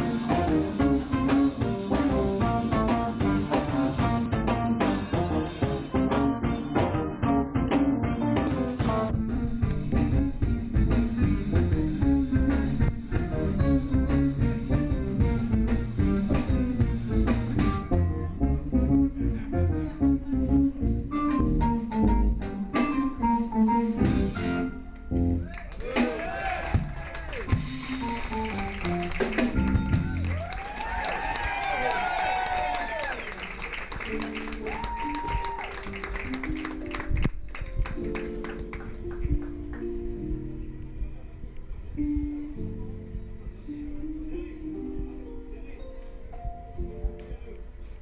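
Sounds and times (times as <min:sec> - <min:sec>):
electric bass line: 0:00.0 - 0:25.4, 0:27.5 - 0:30.5
electric guitar: 0:00.0 - 0:25.4
keyboard: 0:00.0 - 0:26.4, 0:27.4 - 0:48.0
drums: 0:00.0 - 0:40.3
voices whooping and cheering: 0:25.5 - 0:27.6, 0:30.0 - 0:33.4, 0:34.6 - 0:36.0.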